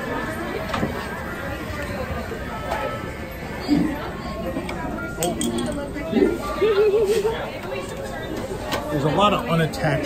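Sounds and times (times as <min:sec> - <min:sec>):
indistinct talking: 0:00.0 - 0:10.0.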